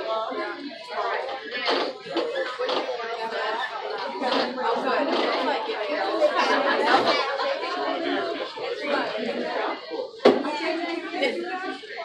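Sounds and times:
many people talking: 0:00.0 - 0:12.0.

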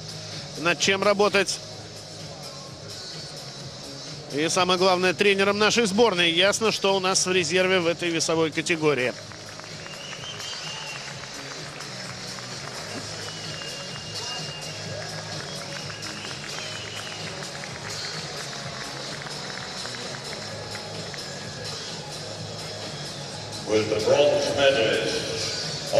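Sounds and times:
arena background music: 0:00.0 - 0:25.9
crowd noise in a large hall: 0:00.0 - 0:25.9.

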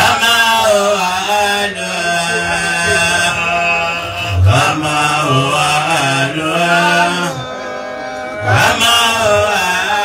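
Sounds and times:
voices chanting devotional song: 0:00.0 - 0:10.0.

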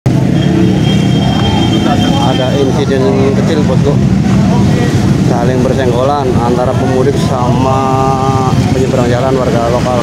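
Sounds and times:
highway traffic: 0:00.0 - 0:10.0
people's voices: 0:00.1 - 0:10.0.

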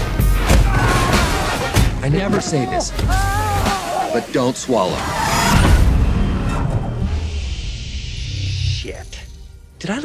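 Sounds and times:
trailer music: 0:04.8 - 0:10.0.

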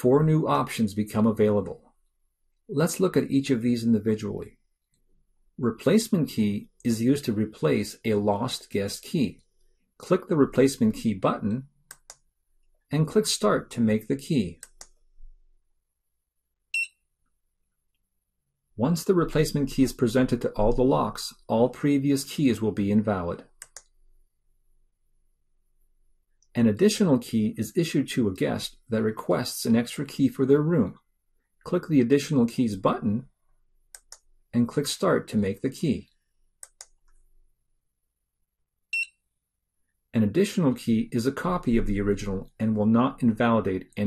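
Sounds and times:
mouse click: 0:11.9 - 0:12.3, 0:14.6 - 0:15.0, 0:23.6 - 0:24.0, 0:33.9 - 0:34.3, 0:36.6 - 0:37.2
keycard encoder beep: 0:16.7 - 0:17.0, 0:38.9 - 0:39.2.

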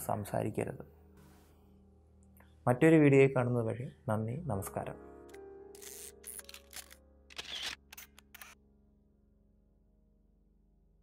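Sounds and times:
sharp clicks: 0:05.3 - 0:08.6.

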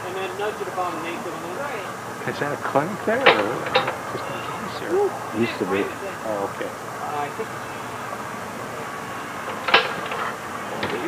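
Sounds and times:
aircraft engine magneto clicks: 0:03.0 - 0:04.6, 0:09.3 - 0:11.0.

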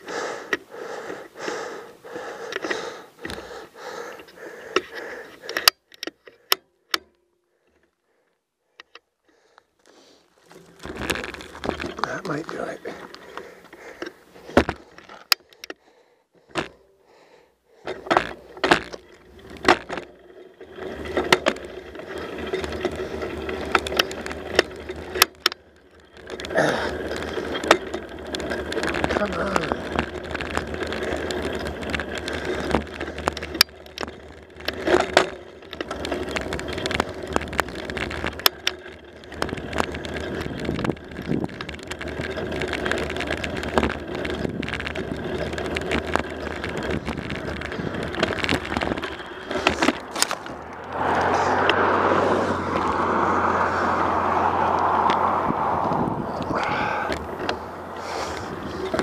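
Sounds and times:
bicycle tyre noise on pavement: 0:00.0 - 0:06.5, 0:07.4 - 0:59.0
bike clicks and rattles: 0:00.0 - 0:59.0
wind on microphone: 0:54.6 - 0:57.2.

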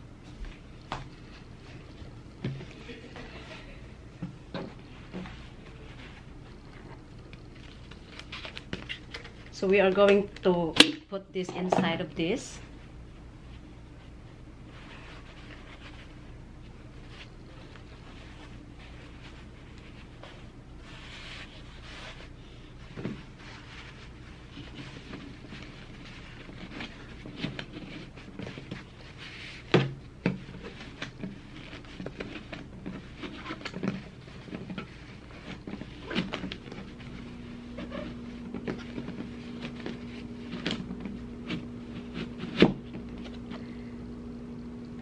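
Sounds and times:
steady low hum: 0:00.0 - 0:45.0
paper rustling: 0:04.8 - 0:10.0.

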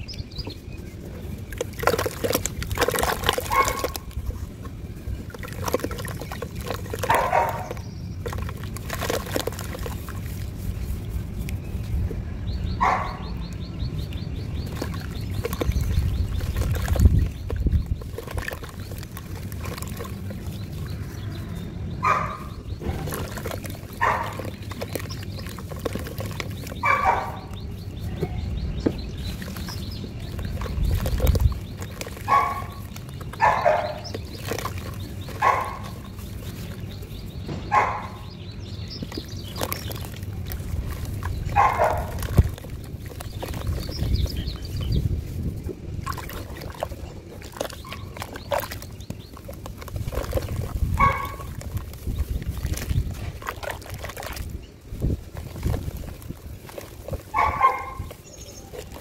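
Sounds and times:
wet sand squelching and sloshing: 0:00.0 - 0:59.0.

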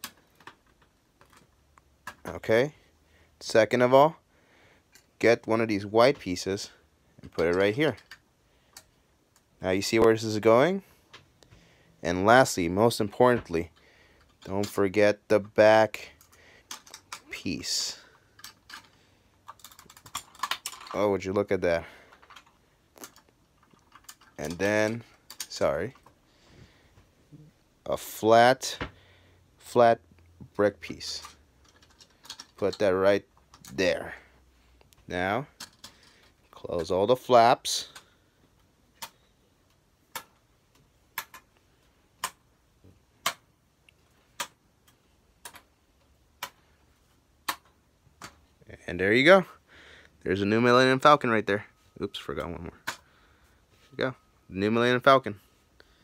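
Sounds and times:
plastic bricks clicking: 0:18.4 - 0:21.0, 0:22.2 - 0:26.1, 0:31.2 - 0:32.6.

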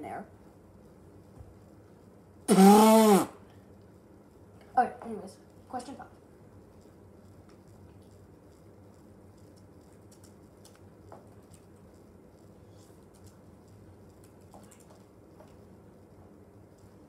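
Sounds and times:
laptop keyboard typing: 0:09.4 - 0:11.8.

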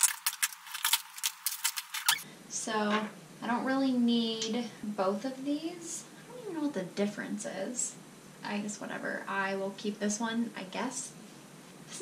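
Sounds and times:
plastic items clattering: 0:00.0 - 0:02.2.

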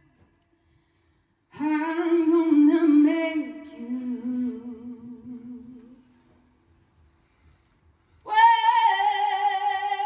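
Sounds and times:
woman singing wordless notes: 0:01.6 - 0:06.0, 0:08.3 - 0:10.0.

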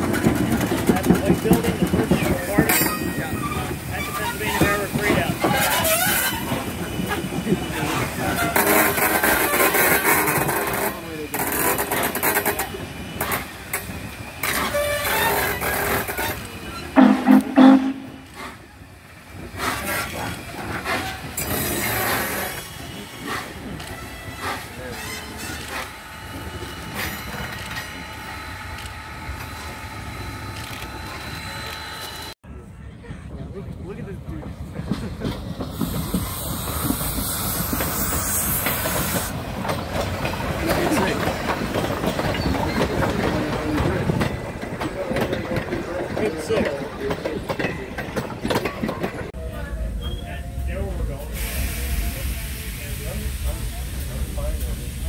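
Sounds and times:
steam locomotive side rods clanking: 0:00.0 - 0:28.8, 0:34.7 - 0:49.4
steam locomotive exhaust beat: 0:00.0 - 0:32.3, 0:33.0 - 0:55.0.

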